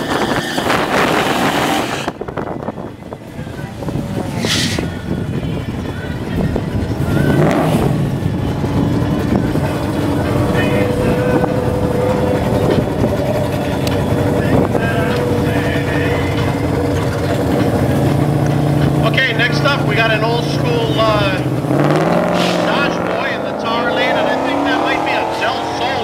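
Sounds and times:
drag car engine idling: 2.1 - 26.0
engine revving bursts: 7.0 - 26.0.

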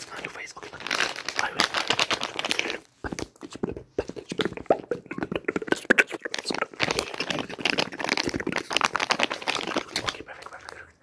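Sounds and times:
plastic packet crinkling: 0.0 - 11.0.

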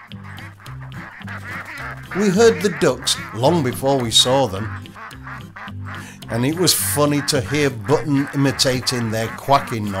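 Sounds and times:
music with repeating bass line: 0.0 - 3.5
ducks quacking: 0.0 - 10.0.

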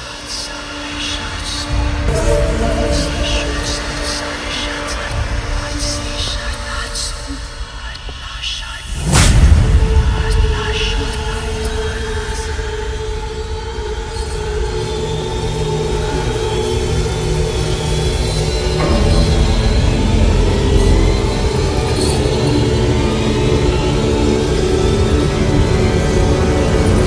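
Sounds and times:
eerie droning tones: 0.0 - 27.0.

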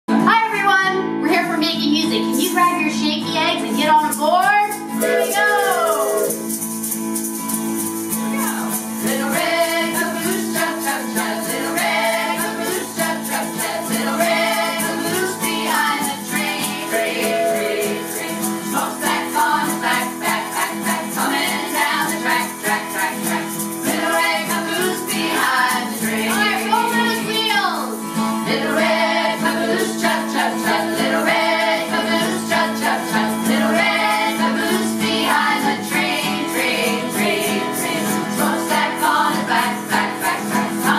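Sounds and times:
acoustic guitar strumming: 0.1 - 40.9
egg shakers shaken: 4.1 - 40.9
group of voices singing: 5.0 - 6.6, 9.0 - 27.3, 28.4 - 40.9.

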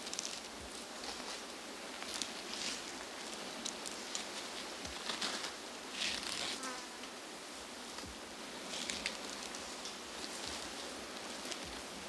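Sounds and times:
faint insect buzz: 0.0 - 12.0
rustling in dry grass: 0.0 - 12.0.

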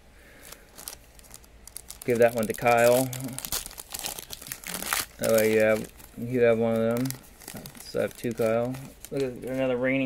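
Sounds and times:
foil wrapper crinkling: 0.3 - 10.0.

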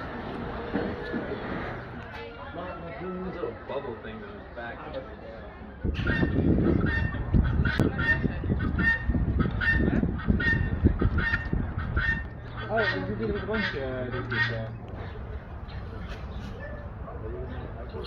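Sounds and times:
guineafowl calling: 5.9 - 16.8.

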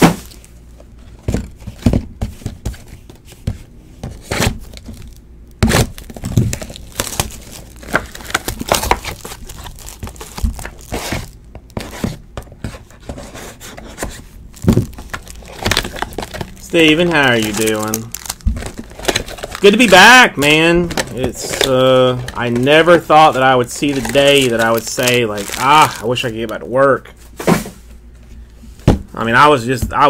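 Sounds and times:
packaging crinkling and tearing: 4.2 - 12.0, 14.0 - 26.7
cardboard boxes knocking: 14.0 - 16.5.

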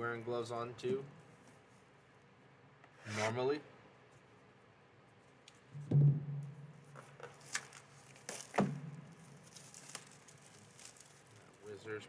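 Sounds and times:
plastic wrap crinkling and tearing: 7.4 - 11.8.

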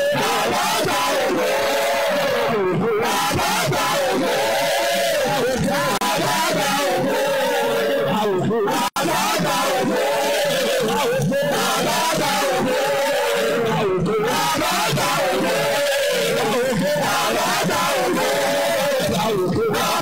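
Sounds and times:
church choir singing: 0.0 - 20.0.

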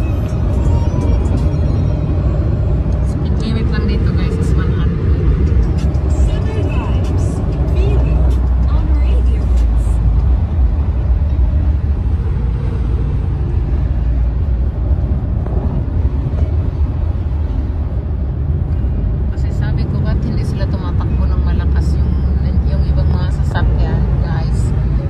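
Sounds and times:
music: 0.0 - 2.5
car road and engine rumble: 0.0 - 25.0.

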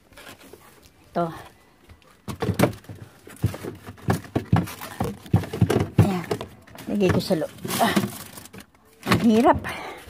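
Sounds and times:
groceries knocking in a fridge: 2.3 - 9.7.

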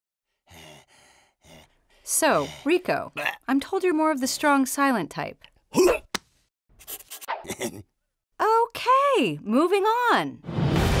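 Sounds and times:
breathy vocal grunts and huffs: 0.3 - 3.5, 5.6 - 6.2, 6.9 - 7.9.

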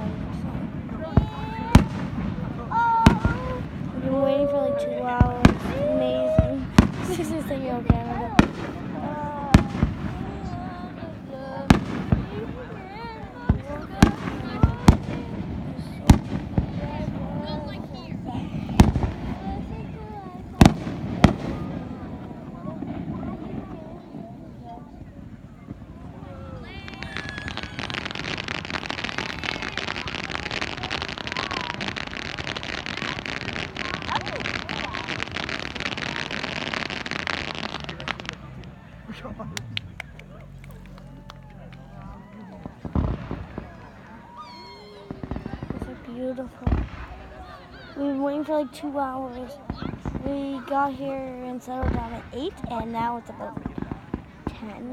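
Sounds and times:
fireworks bursting: 0.0 - 54.9.

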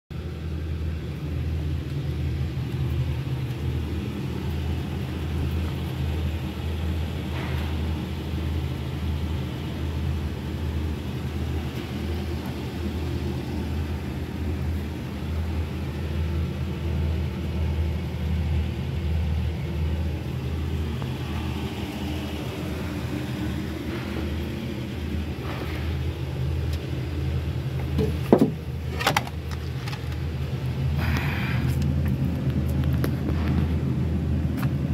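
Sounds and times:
forklift diesel engine idling: 0.1 - 34.9.

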